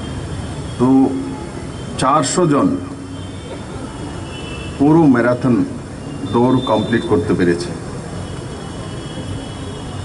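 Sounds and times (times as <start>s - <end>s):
man speaking into a microphone: 0.8s - 1.4s, 2.0s - 3.0s, 4.8s - 7.9s.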